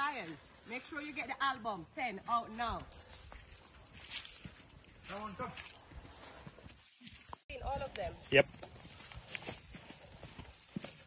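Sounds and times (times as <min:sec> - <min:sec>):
footsteps crunching on dry leaves: 0:00.0 - 0:01.6, 0:02.2 - 0:11.0.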